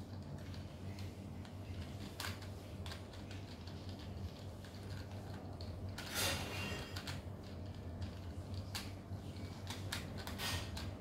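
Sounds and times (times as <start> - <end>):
low steady hum: 0.0 - 11.0
plastic puzzle clicking and clacking: 6.8 - 11.0.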